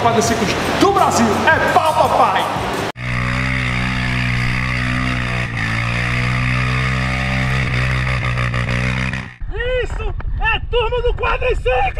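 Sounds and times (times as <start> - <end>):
held drone: 2.8 - 9.4.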